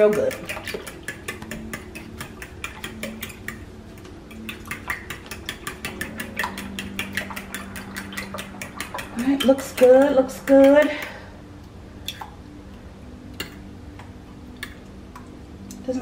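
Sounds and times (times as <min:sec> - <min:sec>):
fork whisking in glass bowl: 0:00.0 - 0:03.7, 0:04.3 - 0:11.2.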